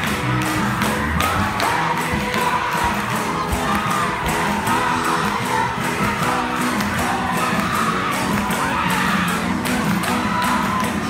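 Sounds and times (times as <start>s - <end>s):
hand clapping in time: 0.0s - 11.0s
congregation singing along: 1.2s - 8.1s.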